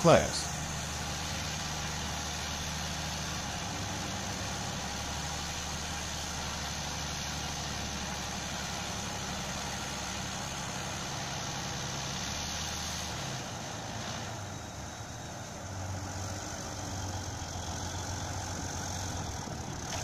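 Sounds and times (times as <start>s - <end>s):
diesel engines droning: 0.0s - 20.0s.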